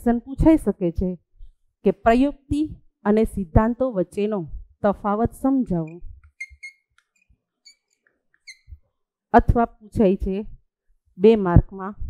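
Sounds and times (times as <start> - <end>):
chalk tapping on blackboard: 5.8 - 8.6
chalk squeaking on blackboard: 5.8 - 8.8.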